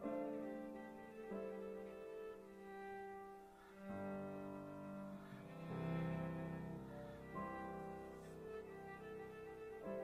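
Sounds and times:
cello bowed: 0.0s - 10.0s
piano accompaniment: 0.0s - 10.0s.

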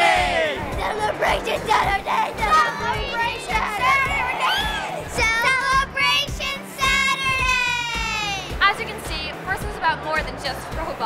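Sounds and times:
children shouting and cheering: 0.0s - 8.6s
background music: 0.0s - 11.0s.

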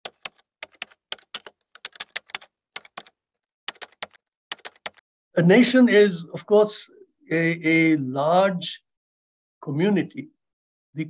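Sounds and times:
keyboard typing clicks: 0.0s - 3.1s, 3.7s - 5.0s.

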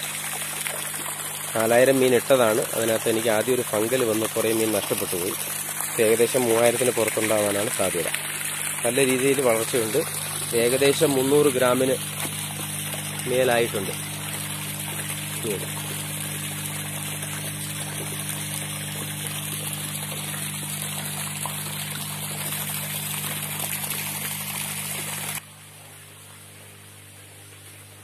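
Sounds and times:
water running into fish tank: 0.0s - 28.0s.

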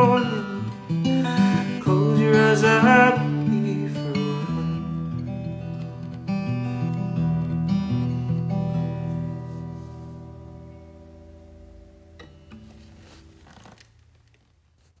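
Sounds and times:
fingerpicked acoustic guitar: 0.0s - 15.0s.

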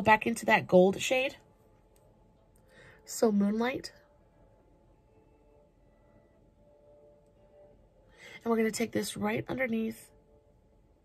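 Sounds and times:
faint steady tones: 0.0s - 11.0s.

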